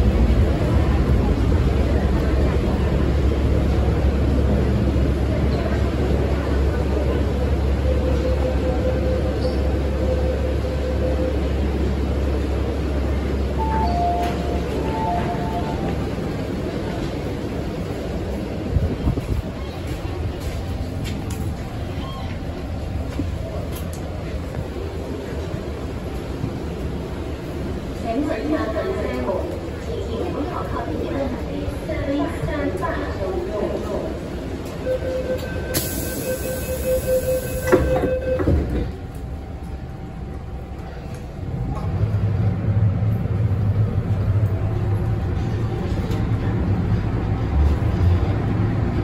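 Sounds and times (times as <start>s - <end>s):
station noise: 0.0s - 49.0s
train low hum: 0.0s - 49.0s
two-note door chime: 13.6s - 15.9s
rapid door warning beeps: 34.9s - 38.7s.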